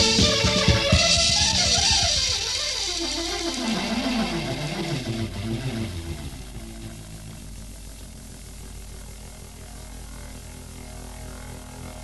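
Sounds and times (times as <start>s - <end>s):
rock band music: 0.0s - 2.6s
drums: 0.0s - 9.4s.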